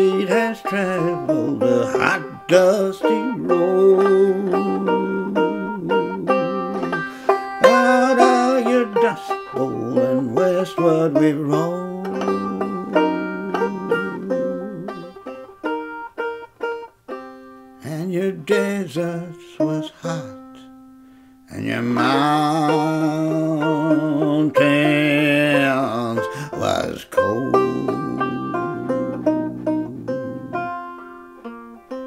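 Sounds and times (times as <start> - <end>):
banjo picking: 0.0 - 32.0.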